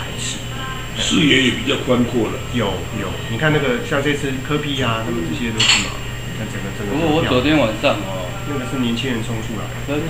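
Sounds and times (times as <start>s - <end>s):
tableware clinking: 5.5s - 6.2s
man talking: 6.4s - 10.0s.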